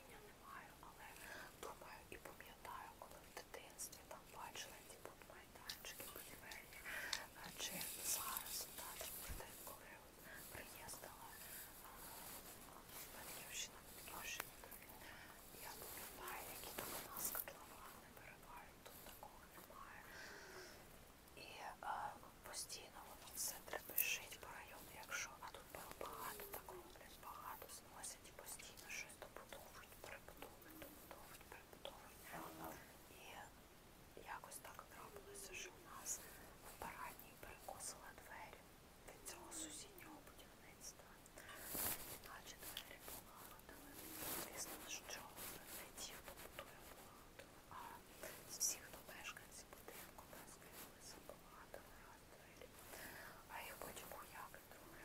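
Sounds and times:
woman whispering: 0.0 - 55.0.

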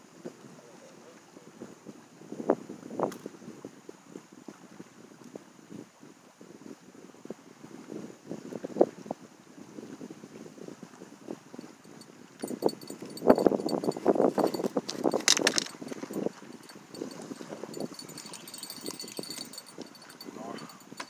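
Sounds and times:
wind buffeting microphone: 1.5 - 21.0
rustles and small clicks: 12.4 - 21.0.

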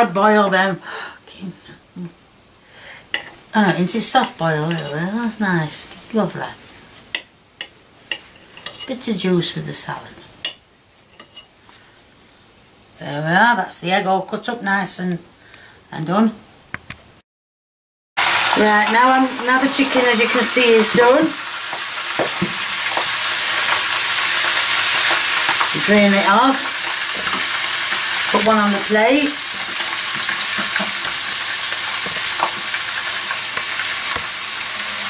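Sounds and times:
fat sizzling in a roasting tin: 2.8 - 12.4, 18.2 - 35.0.

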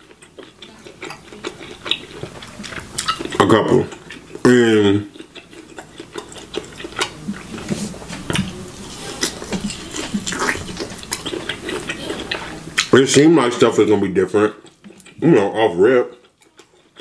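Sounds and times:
person chewing with mouth clicks: 0.0 - 13.0, 14.5 - 17.0.

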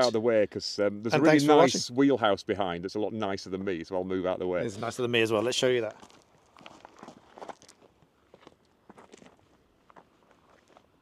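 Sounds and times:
footsteps on dirt path: 5.4 - 11.0.

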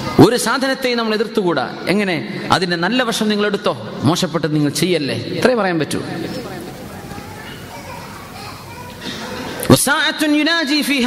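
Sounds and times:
faint background voices: 6.2 - 9.7.

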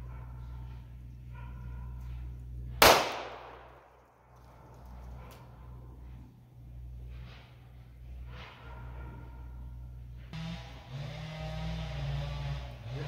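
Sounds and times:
revolver gunshot echoing: 2.8 - 4.0.

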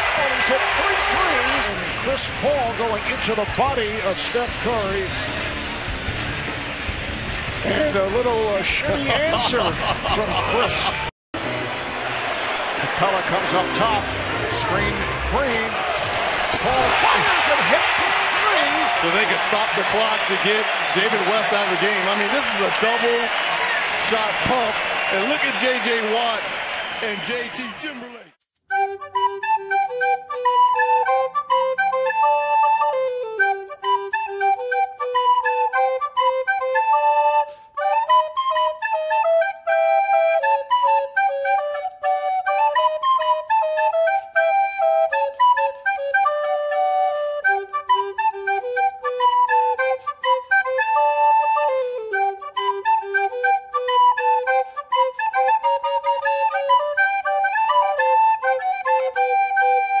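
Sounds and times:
flute-like melody over beat: 2.4 - 9.2, 28.1 - 60.0.

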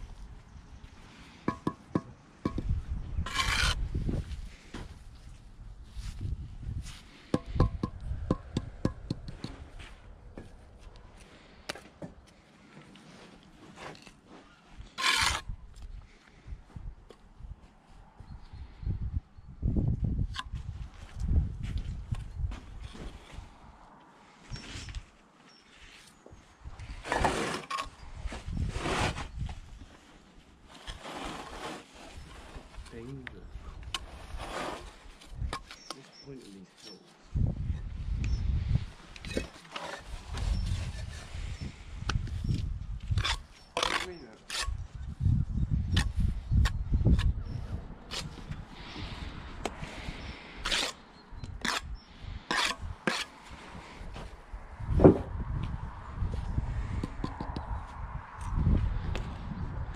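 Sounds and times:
trowel tapping bricks: 1.4 - 2.7, 7.3 - 9.6
trowel scraping mortar: 3.2 - 3.8, 13.7 - 15.5, 26.9 - 28.0, 30.7 - 33.0, 33.9 - 37.0, 39.2 - 41.4, 43.1 - 44.8, 48.1 - 49.0, 50.6 - 51.0, 51.6 - 51.9, 52.5 - 53.9.

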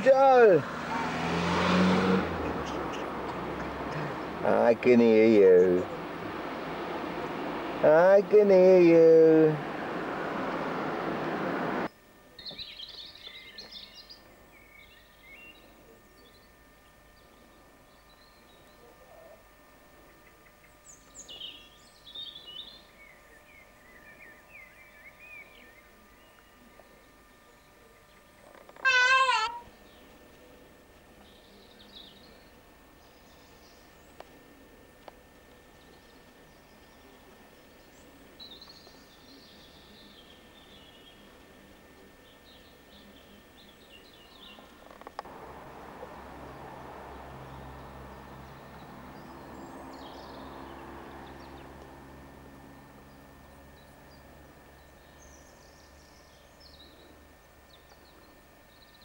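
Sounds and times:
small birds chirping: 2.2 - 9.5, 11.8 - 59.0
loud warbling bird call: 28.8 - 29.7.

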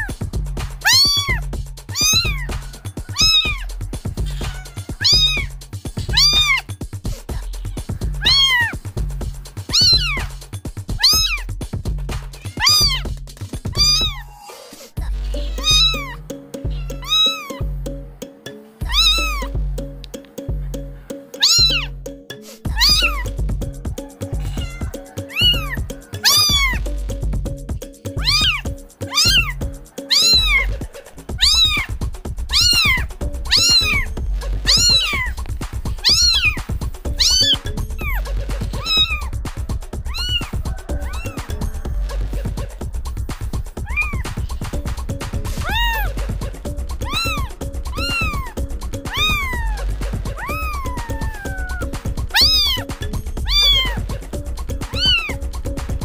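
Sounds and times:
music with low beat: 0.0 - 14.3, 15.0 - 56.0
kitten meowing: 0.8 - 5.5, 6.1 - 6.7, 7.3 - 8.8, 9.7 - 10.3, 10.9 - 11.5, 12.4 - 13.0, 13.7 - 14.5, 15.3 - 17.7, 18.8 - 19.6, 21.4 - 21.9, 22.7 - 23.4, 24.0 - 26.8, 28.2 - 35.4, 36.0 - 39.4, 40.0 - 41.6, 43.8 - 44.6, 45.5 - 46.4, 47.0 - 54.1, 54.8 - 55.4.

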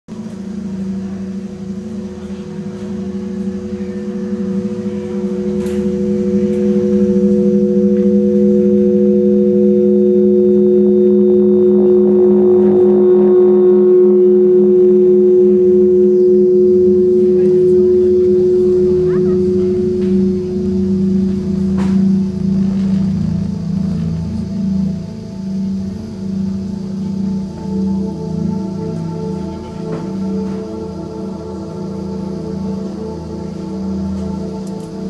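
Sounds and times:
low drone tones: 0.0 - 35.0.

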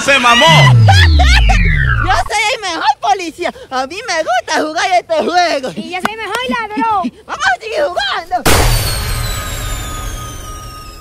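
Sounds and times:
high tones sliding down: 0.3 - 2.3
deep bass hit: 0.4 - 2.3
steady held tone: 0.4 - 2.3, 8.5 - 11.0.

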